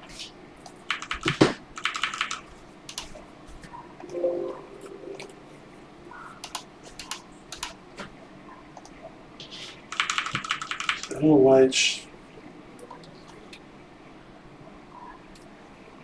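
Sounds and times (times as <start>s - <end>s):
typing on computer keyboard: 0.8s - 3.1s, 6.4s - 7.8s, 9.9s - 11.2s.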